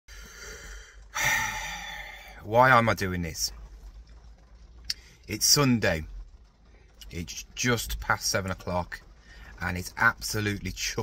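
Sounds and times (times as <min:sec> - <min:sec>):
man sighing heavily: 0:00.2 - 0:02.3.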